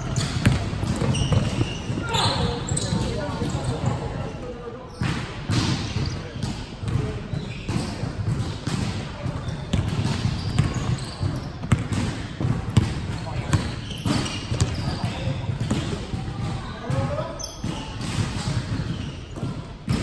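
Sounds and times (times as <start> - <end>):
players' voices: 0.0 - 20.0
basketball bouncing on hardwood: 0.2 - 2.0, 8.2 - 13.7.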